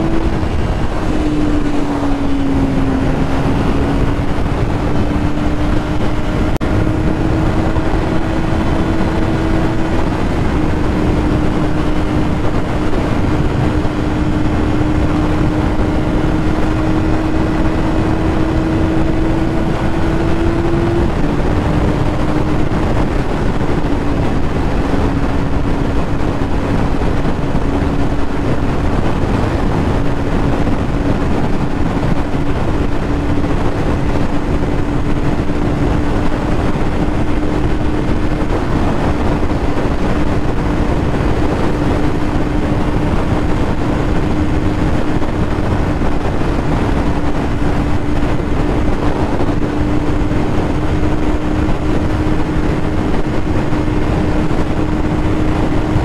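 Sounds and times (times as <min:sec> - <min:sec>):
motorcycle engine running: 0:00.0 - 0:56.0
wind rushing over microphone: 0:00.0 - 0:56.0.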